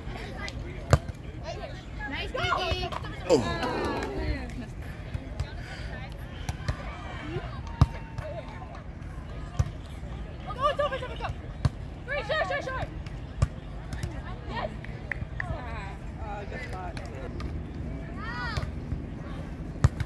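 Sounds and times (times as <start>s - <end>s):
players' short calls: 3.3s - 4.4s.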